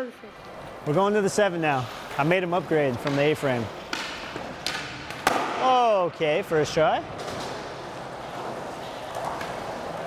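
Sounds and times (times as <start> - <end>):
skateboard wheels rolling on concrete: 0.1 - 10.0.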